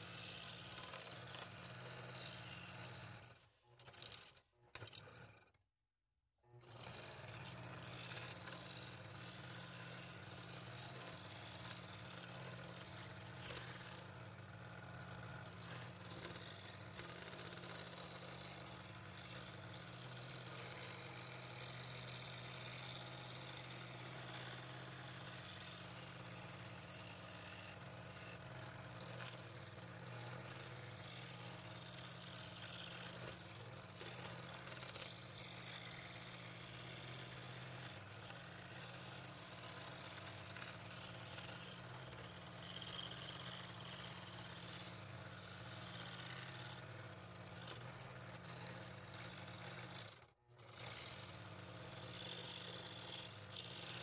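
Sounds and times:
scroll saw cutting wood: 0:00.0 - 0:05.7, 0:06.5 - 0:54.0.

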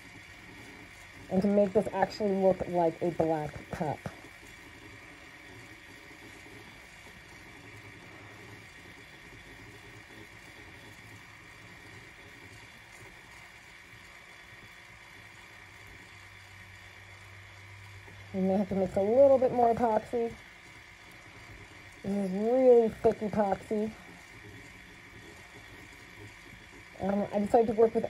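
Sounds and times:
small electric motor hum: 0:00.0 - 0:28.0.

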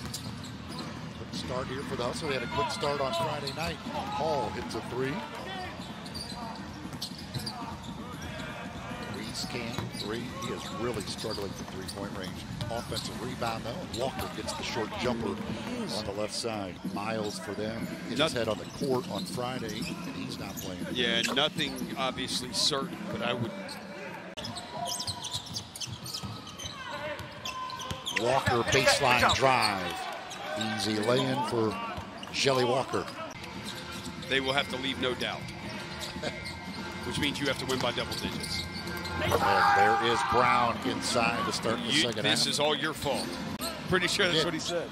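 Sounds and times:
sneaker squeaks: 0:00.0 - 0:22.4, 0:23.5 - 0:40.2, 0:41.2 - 0:44.5.

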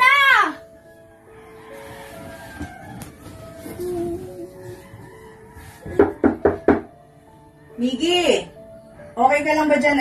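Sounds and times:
knocks on a door: 0:05.8 - 0:07.0.

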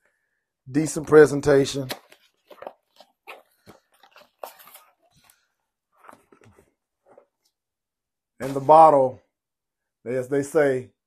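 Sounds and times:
cardboard box rustling: 0:02.0 - 0:07.3.

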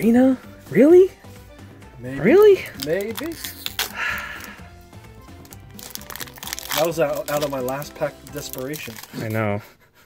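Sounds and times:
quiet background music: 0:00.0 - 0:10.0
foil wrapper crinkling: 0:02.3 - 0:04.6, 0:05.2 - 0:09.4.

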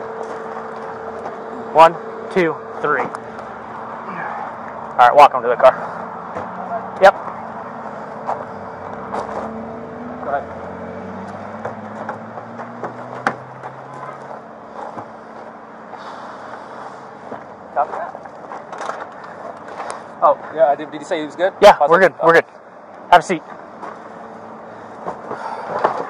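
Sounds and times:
vehicle engines humming: 0:00.0 - 0:26.0.

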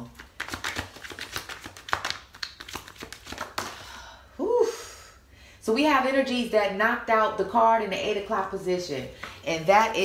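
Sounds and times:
cards being shuffled: 0:00.0 - 0:03.8.

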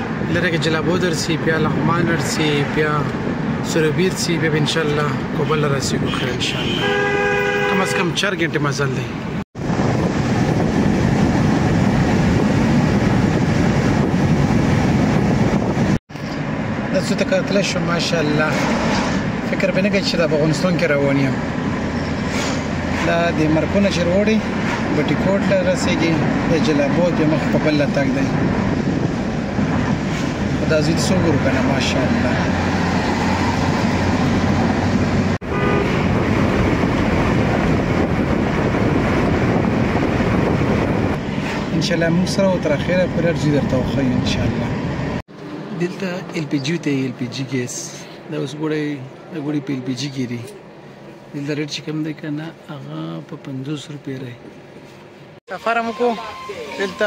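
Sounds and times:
car road and engine rumble: 0:00.0 - 0:55.8.

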